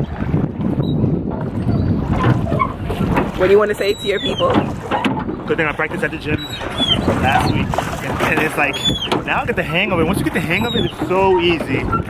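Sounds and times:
oars rowing metal boat: 0.0s - 12.0s
wind rumbling on microphone: 0.0s - 12.0s.

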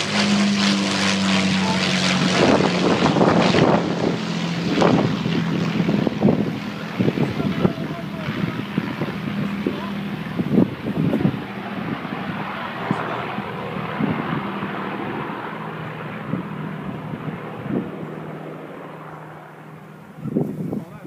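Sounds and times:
propeller plane engines droning: 0.0s - 21.0s.

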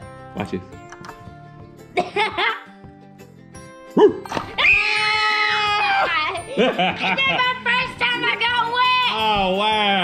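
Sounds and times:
quiet background music: 0.0s - 10.0s
child shrieking and scream-laughing: 4.6s - 6.6s.

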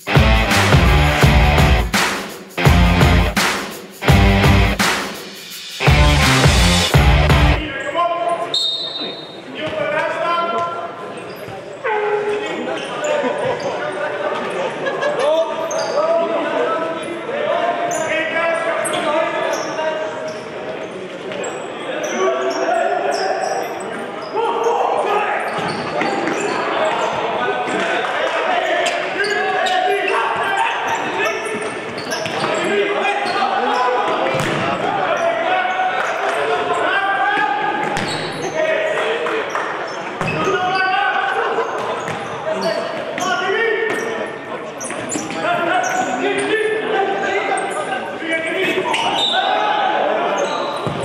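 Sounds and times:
shoes squeaking on court floor: 7.7s - 14.7s, 15.6s - 16.1s, 18.8s - 35.4s, 37.8s - 38.6s, 39.5s - 40.9s, 41.6s - 46.6s, 47.5s - 49.6s, 50.3s - 51.0s.

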